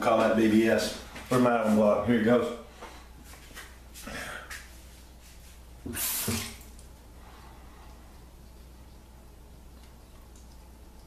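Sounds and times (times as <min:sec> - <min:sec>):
tap water splash: 0:05.9 - 0:06.9.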